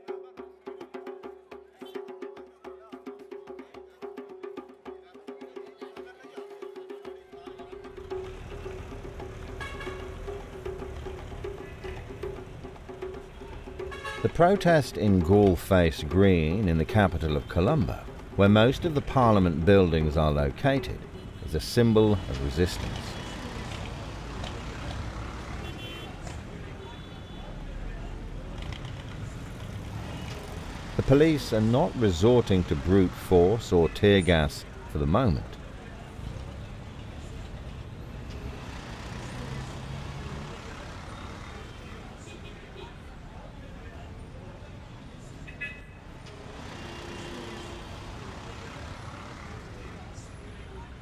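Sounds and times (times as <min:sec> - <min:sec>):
road traffic: 0:07.7 - 0:51.0.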